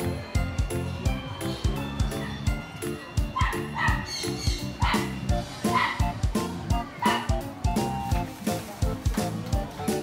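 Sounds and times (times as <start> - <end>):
upbeat background music: 0.0 - 10.0
dog yipping: 3.4 - 6.1, 7.0 - 7.4.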